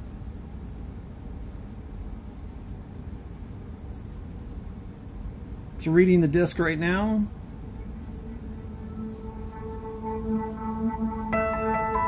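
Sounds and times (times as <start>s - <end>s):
low steady hum and hiss: 0.0s - 12.0s.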